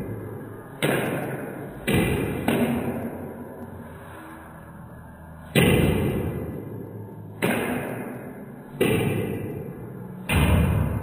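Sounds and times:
slowed table tennis ball hits: 0.7s - 3.3s, 7.3s - 11.0s.

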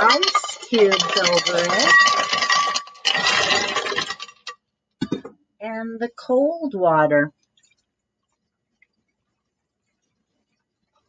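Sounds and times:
ice cubes clattering: 0.0s - 4.6s.

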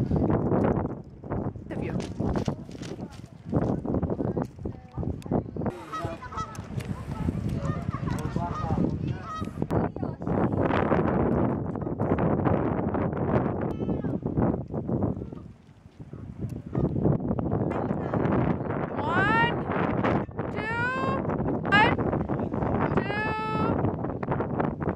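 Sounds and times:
goose-like honking calls: 5.7s - 9.6s.

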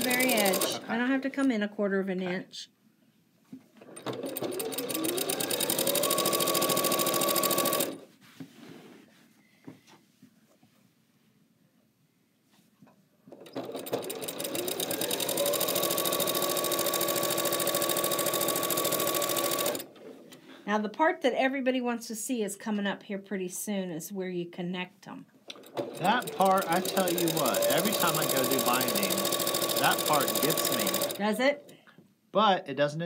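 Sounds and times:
sewing machine stitching: 0.0s - 0.9s, 3.8s - 8.0s, 13.3s - 20.2s, 25.5s - 31.3s.

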